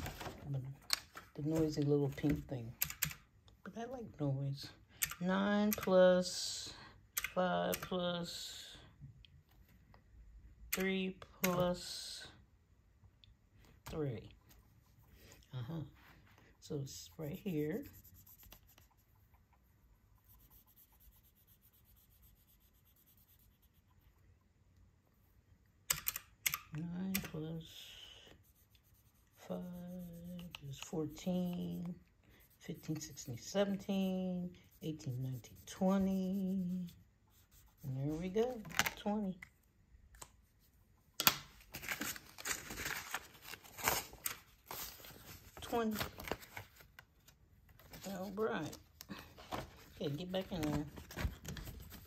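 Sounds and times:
marker tip scratching: 16.8 - 23.9, 28.4 - 38.4
paper and plastic crinkling: 41.6 - 52.0.

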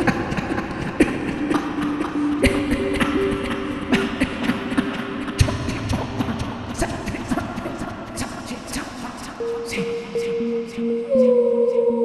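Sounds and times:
experimental electronic music: 0.0 - 12.0.

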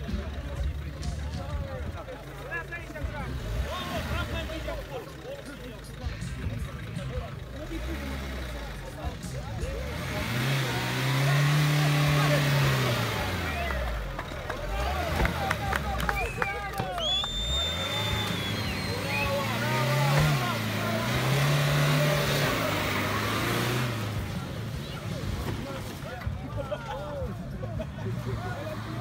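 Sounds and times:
car engine revving: 0.0 - 29.0.

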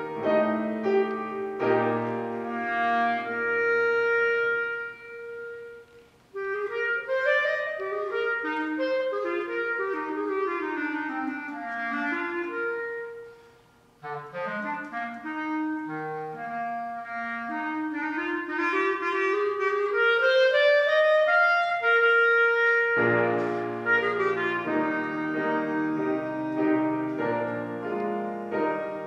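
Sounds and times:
clarinet melody: 0.0 - 29.0
piano chords: 0.0 - 29.0.

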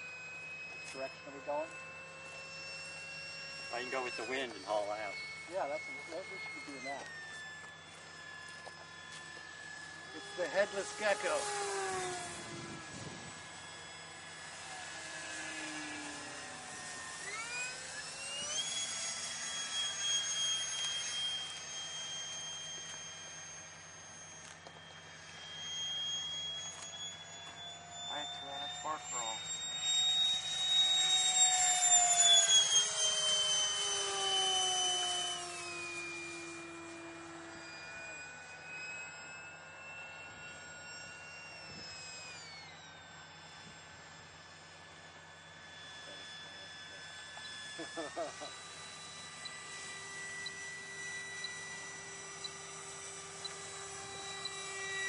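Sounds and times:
model airplanes whining overhead: 0.0 - 55.0
plane passing close: 0.0 - 55.0.

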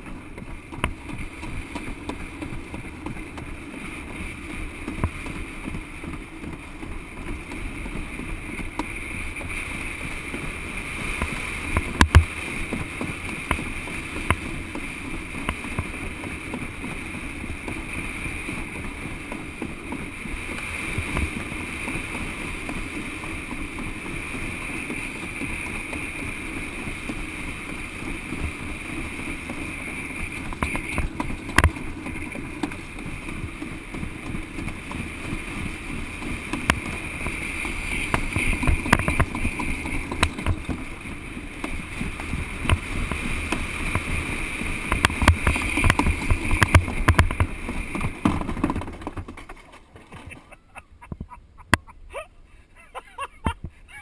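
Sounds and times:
sled scraping down concrete track: 0.0 - 54.0
sharp knocks from track bumps: 11.2 - 14.8, 30.4 - 35.4, 36.0 - 41.0, 41.6 - 51.9.

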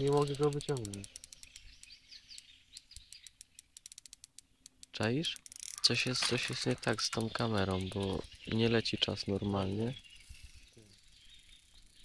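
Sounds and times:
rapid high ticking: 0.0 - 9.9
small birds chirping: 0.0 - 12.0.

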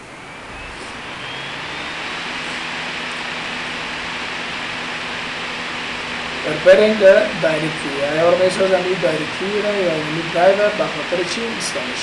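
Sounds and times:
high mechanical whine rising: 0.0 - 12.0
rushing noise: 0.0 - 12.0.

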